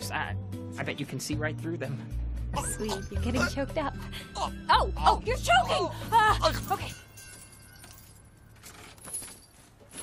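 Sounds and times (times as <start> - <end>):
small metal chain jingling: 6.2 - 10.0.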